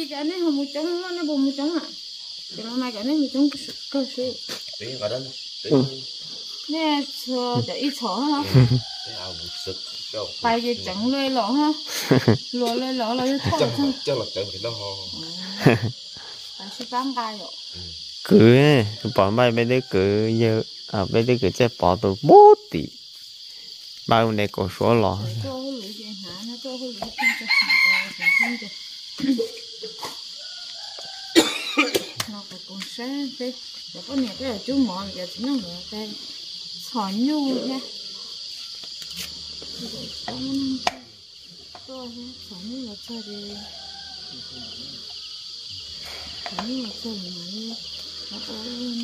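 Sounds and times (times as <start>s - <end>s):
woman talking: 0.0s - 4.4s, 6.7s - 8.5s, 10.4s - 11.8s, 12.5s - 14.0s, 16.6s - 17.6s, 25.4s - 29.5s, 32.2s - 36.2s, 36.8s - 37.9s, 39.8s - 40.9s, 41.9s - 43.6s, 46.5s - 49.0s
insects chirping: 0.0s - 49.0s
rooster crowing: 8.4s - 10.2s, 18.8s - 20.5s, 27.2s - 29.1s, 30.3s - 32.0s, 43.0s - 46.6s.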